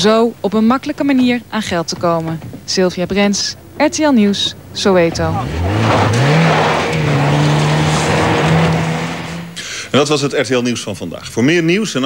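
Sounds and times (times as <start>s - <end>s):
tyres churning on loose dirt: 0.0s - 9.6s
car engine revving hard: 4.7s - 9.6s.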